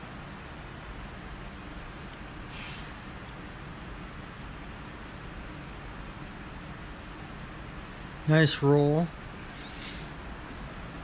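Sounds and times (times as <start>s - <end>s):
background hiss: 2.5s - 3.0s.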